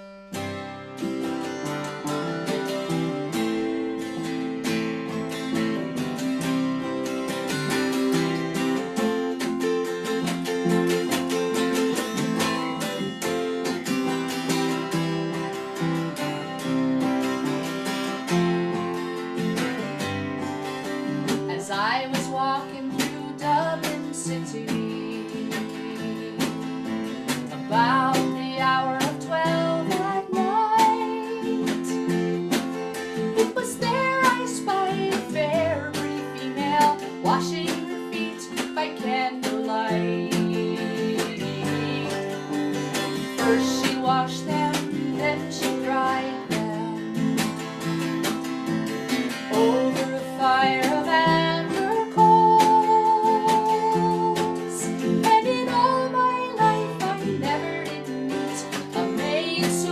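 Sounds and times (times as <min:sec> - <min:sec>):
acoustic guitar: 0:00.0 - 0:59.9
woman singing: 0:20.8 - 0:59.9.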